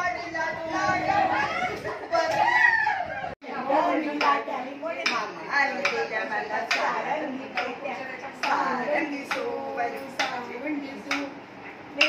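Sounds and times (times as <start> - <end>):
women's voices: 3.4 - 11.4.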